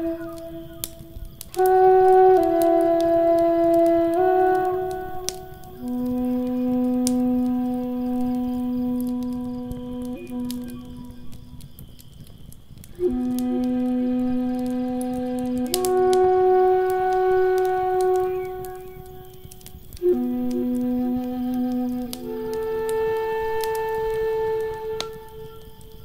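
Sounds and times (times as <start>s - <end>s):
flute playing long notes: 0.0s - 11.9s, 12.9s - 26.0s
wood fire crackling: 0.0s - 26.0s.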